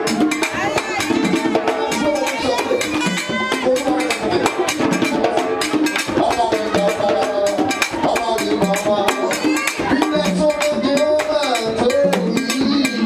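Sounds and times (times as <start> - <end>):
hand drums: 0.0 - 13.0
man speaking into microphone: 1.6 - 5.4, 6.2 - 13.0.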